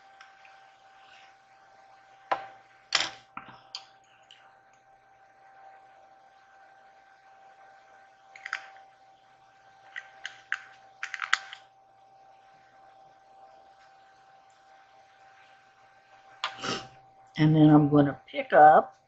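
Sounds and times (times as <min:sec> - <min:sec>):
makeup items clicking and tapping: 0:09.9 - 0:11.6.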